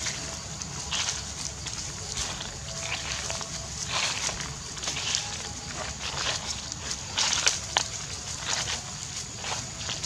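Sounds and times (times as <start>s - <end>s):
leaves rustling under footsteps: 0.0s - 10.0s.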